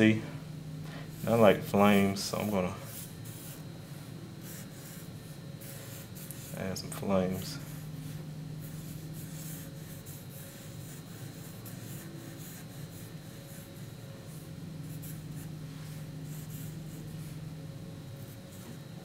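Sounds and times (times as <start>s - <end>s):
steady low hum: 0.0s - 19.0s
marker drawing on paper: 1.2s - 6.6s, 7.6s - 17.4s.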